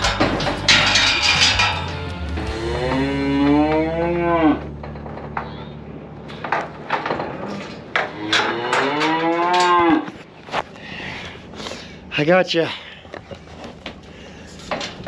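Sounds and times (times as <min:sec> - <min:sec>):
knocks and clatters: 0:00.0 - 0:03.9, 0:04.6 - 0:09.9.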